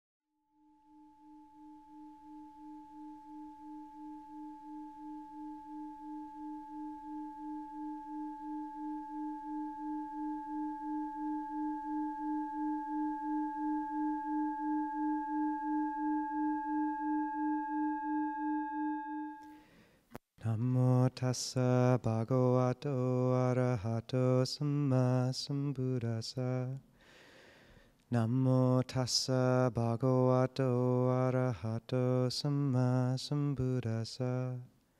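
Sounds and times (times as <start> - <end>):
singing bowl ringing: 0.5 - 19.6.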